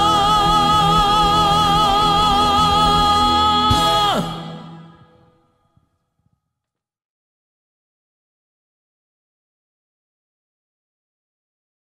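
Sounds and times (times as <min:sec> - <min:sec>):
backing track final chord: 0:00.0 - 0:05.4
man singing held note: 0:00.0 - 0:05.4.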